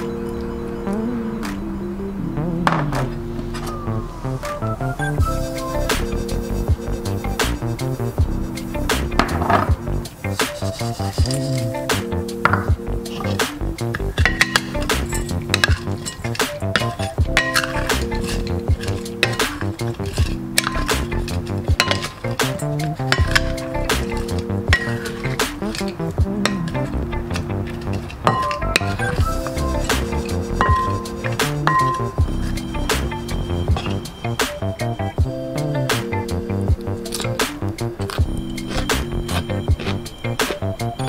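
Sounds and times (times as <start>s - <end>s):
background music: 0.0s - 41.0s
wooden utensils clinking on glass bowl: 12.4s - 32.6s.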